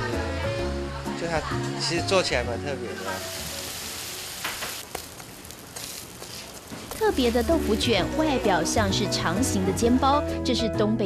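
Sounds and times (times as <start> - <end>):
tofu sizzling on a griddle: 3.0 - 7.6.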